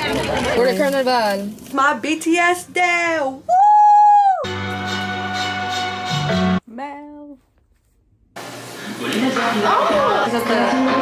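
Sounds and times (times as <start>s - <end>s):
woman cheering woo: 3.5s - 4.6s.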